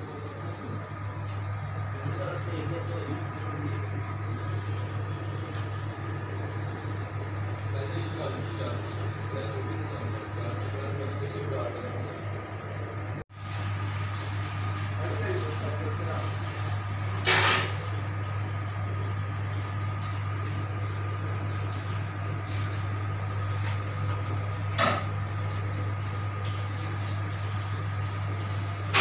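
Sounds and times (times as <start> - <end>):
kitchen machinery humming: 0.0 - 29.0.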